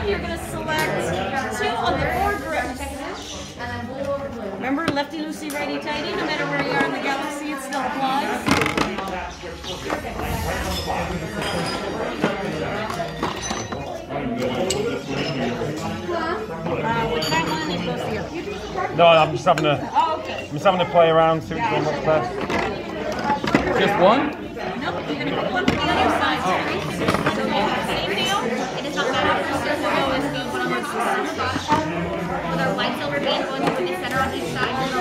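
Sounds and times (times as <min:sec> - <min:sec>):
background chatter: 0:00.0 - 0:35.0.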